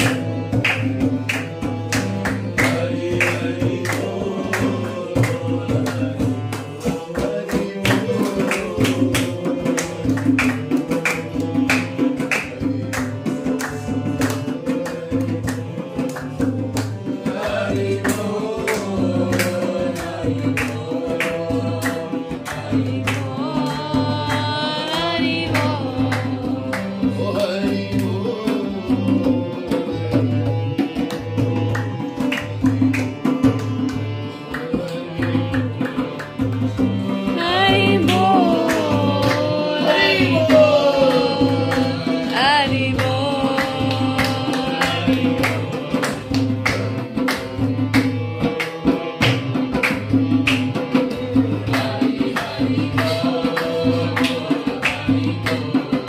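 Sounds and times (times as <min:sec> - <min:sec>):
hand claps: 0:00.0 - 0:56.0
hand drum: 0:00.0 - 0:56.0
harmonium chords: 0:00.0 - 0:56.0
person singing: 0:02.5 - 0:29.8, 0:36.8 - 0:47.0, 0:50.9 - 0:56.0
barrel drum beat: 0:36.4 - 0:48.2.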